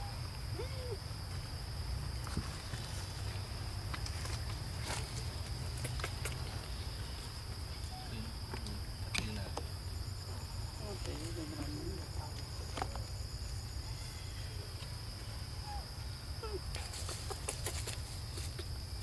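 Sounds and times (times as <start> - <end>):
insects chirring: 0.0 - 19.0.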